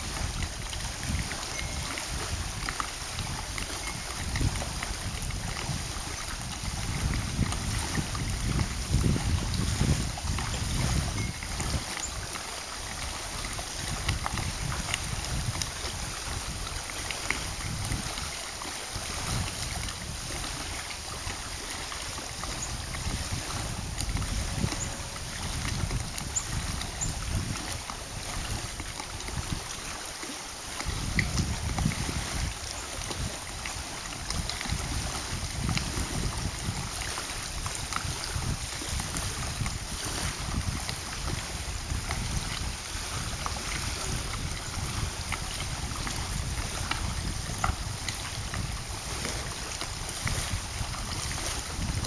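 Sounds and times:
waves lapping: 0.0s - 52.0s
wind buffeting microphone: 0.0s - 52.0s.

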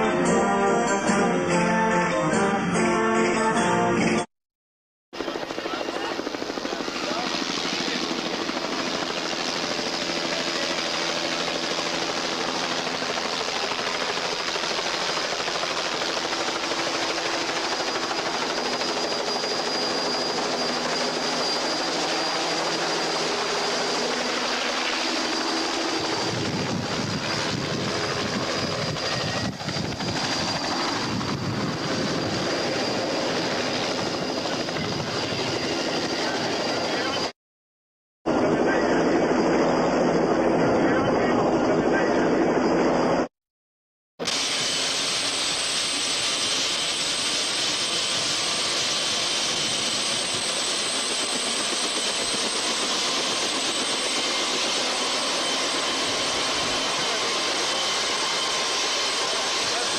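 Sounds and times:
helicopter flying: 5.2s - 37.3s, 38.3s - 43.3s, 44.2s - 59.9s.

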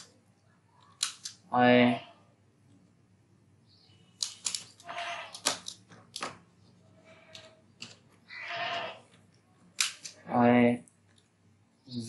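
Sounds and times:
computer keyboard clicks: 0.8s - 1.4s, 4.2s - 6.3s.

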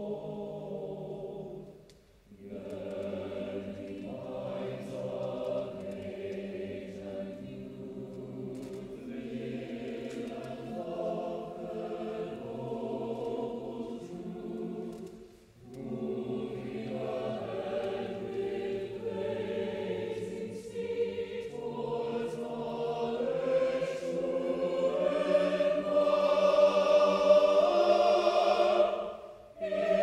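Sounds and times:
choir singing slow phrases: 0.0s - 30.0s.

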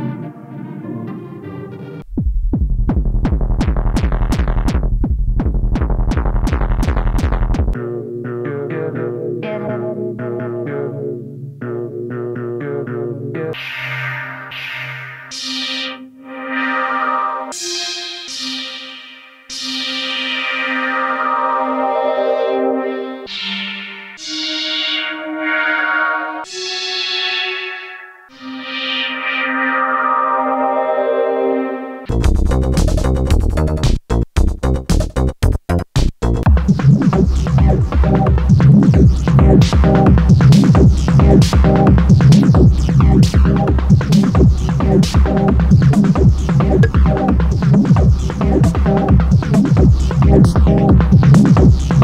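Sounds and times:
synthesizer plucked notes: 6.1s - 33.8s, 36.3s - 52.0s
synthesizer sustained chords: 13.1s - 32.1s.

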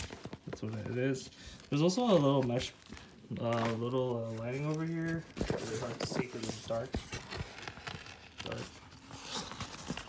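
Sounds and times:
fabric rustling: 0.0s - 10.0s.

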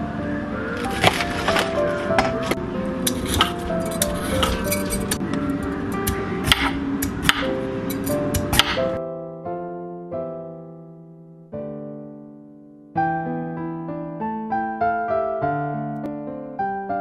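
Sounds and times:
background music: 0.0s - 17.0s
knife chopping on wooden board: 6.4s - 7.5s, 8.4s - 9.0s.

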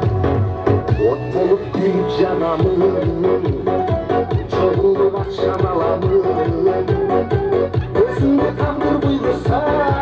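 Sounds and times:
dance music with drum beat: 0.0s - 10.0s.

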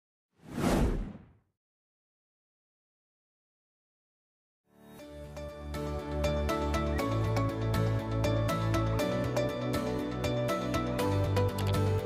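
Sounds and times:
transition whoosh: 0.4s - 1.3s.

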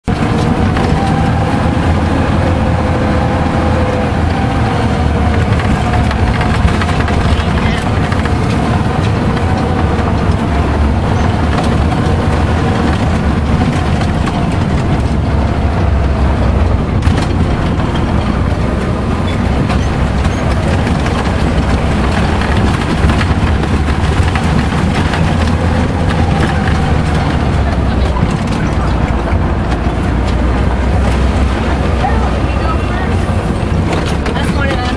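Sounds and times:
tyres rumbling over dirt road: 0.0s - 34.9s
vehicle engine running: 0.0s - 34.9s.

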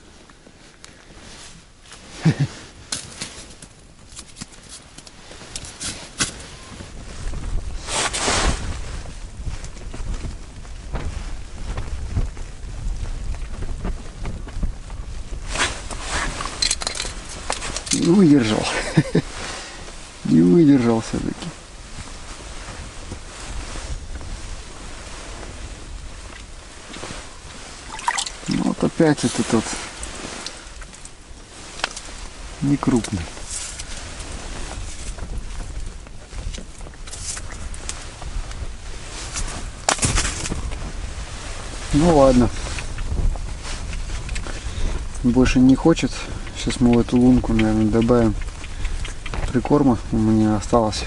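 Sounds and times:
clothing and tent fabric rustling: 0.0s - 51.0s.

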